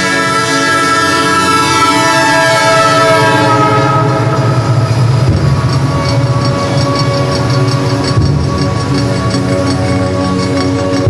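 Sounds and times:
horn-like sound falling in pitch: 0.0 - 6.3
low rolling rumble: 2.6 - 11.0
regular ticking: 4.3 - 11.0.

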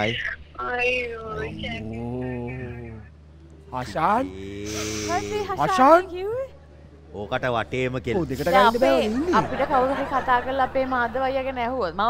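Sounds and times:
short hissing sound: 4.6 - 5.4.

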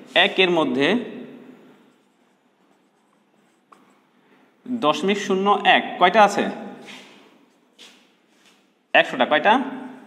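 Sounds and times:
marker writing on a whiteboard: 1.7 - 4.6.

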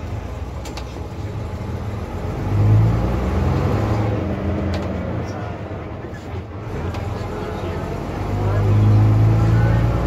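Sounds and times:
bus diesel engine under load: 0.0 - 10.0.

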